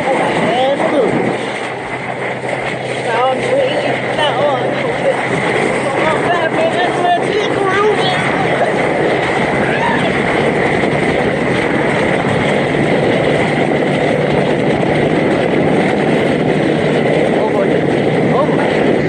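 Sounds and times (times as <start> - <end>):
water spraying: 0.0 - 19.0
wind buffeting microphone: 0.0 - 19.0.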